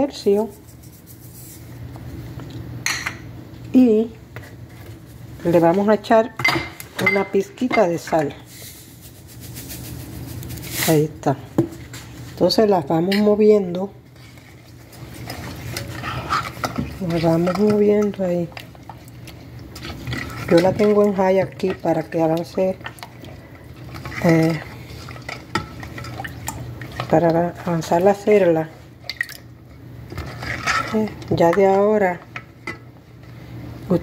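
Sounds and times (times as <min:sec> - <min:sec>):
spatula stirring in a pot: 0:00.2 - 0:01.9, 0:12.9 - 0:33.7.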